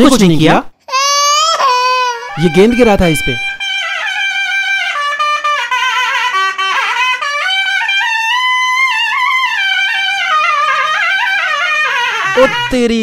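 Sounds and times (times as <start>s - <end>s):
trumpet-like brass melody: 2.3s - 13.0s.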